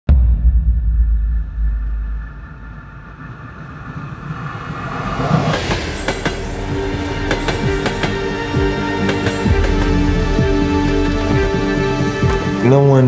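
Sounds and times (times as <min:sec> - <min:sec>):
steady chord of tones: 0:01.0 - 0:13.0
freight train on rails: 0:02.0 - 0:12.6.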